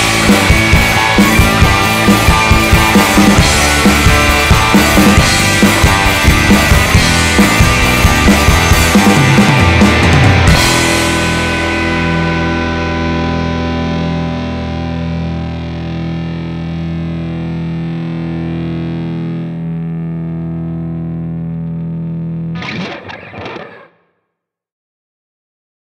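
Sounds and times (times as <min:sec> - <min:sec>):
bass: 0:00.0 - 0:24.0
distorted electric guitars: 0:00.0 - 0:24.2.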